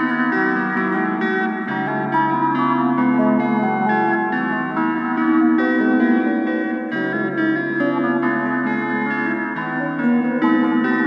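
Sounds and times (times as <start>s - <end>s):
rock blues guitar: 0.0s - 11.0s.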